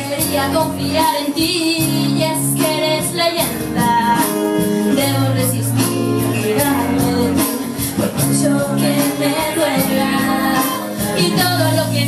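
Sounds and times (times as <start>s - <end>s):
backing track with steady beat: 0.0s - 12.0s
person singing pop song: 0.0s - 12.0s.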